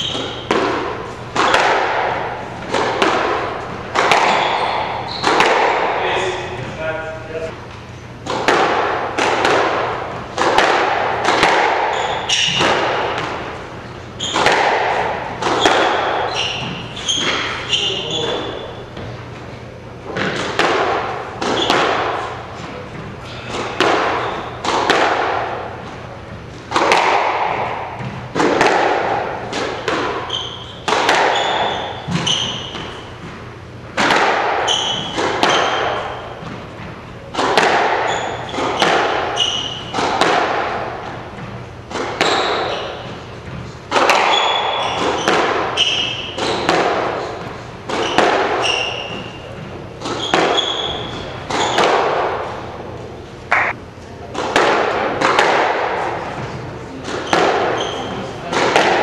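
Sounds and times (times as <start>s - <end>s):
shoes squeaking on wooden floor: 0.0s - 7.9s, 11.6s - 19.5s, 21.4s - 24.7s, 30.2s - 33.8s, 34.6s - 37.0s, 38.0s - 40.0s, 41.3s - 46.8s, 47.4s - 52.0s, 57.3s - 58.4s
squash ball hits echoing: 0.0s - 19.4s, 20.0s - 59.0s.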